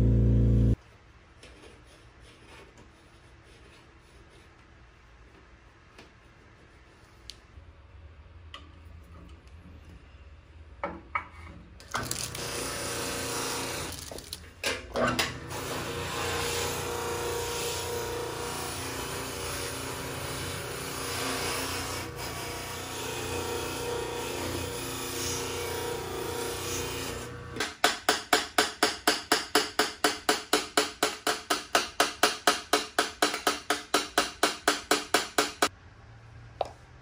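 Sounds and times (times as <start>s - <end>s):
buffing motor humming: 0.0s - 0.8s.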